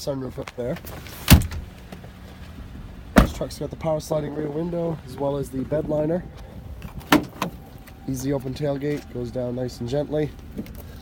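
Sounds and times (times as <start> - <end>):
low handling rumble: 0.0 - 11.0
truck door shutting: 0.6 - 9.2.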